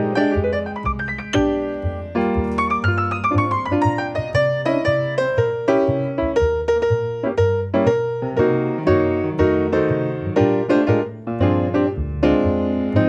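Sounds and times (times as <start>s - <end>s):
double bass low notes: 0.0s - 13.0s
jazz piano solo: 0.0s - 13.0s.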